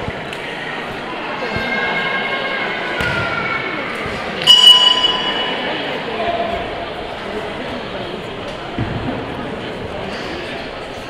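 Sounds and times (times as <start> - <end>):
murmur of voices in a hall: 0.0 - 11.0
boxing ring bell ringing: 4.4 - 5.7.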